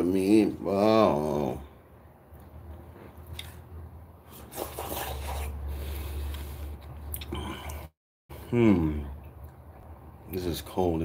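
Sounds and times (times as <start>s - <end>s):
man chewing: 2.3s - 7.9s
small mouth clicks: 7.1s - 7.9s.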